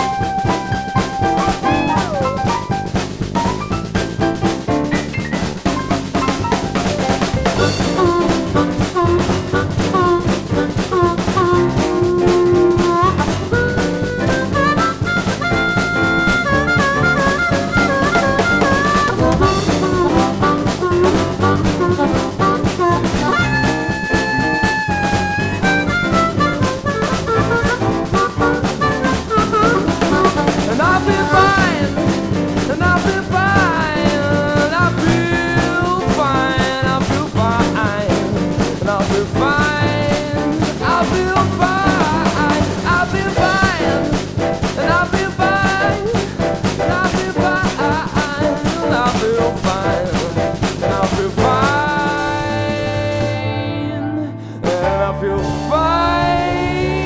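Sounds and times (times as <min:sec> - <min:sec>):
drum kit beat: 0:00.0 - 0:57.0
sliding lead melody: 0:00.0 - 0:57.0.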